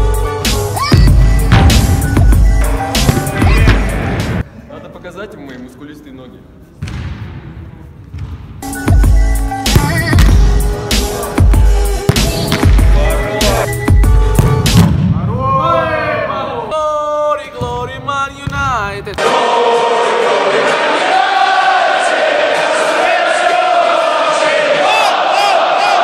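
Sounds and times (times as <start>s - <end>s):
electronic music with heavy bass: 8.8s - 14.8s
stadium crowd chanting: 19.2s - 26.0s.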